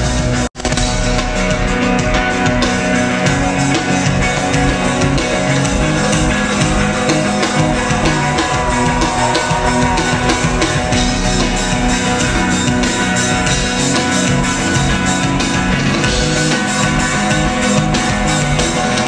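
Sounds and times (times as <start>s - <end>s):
electric guitars: 0.0s - 19.0s
steady drum beat: 0.0s - 19.0s.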